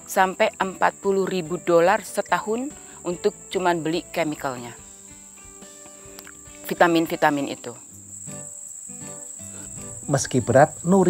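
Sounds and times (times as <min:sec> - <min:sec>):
crickets chirring: 0:00.0 - 0:11.0
soft background music: 0:00.0 - 0:11.0.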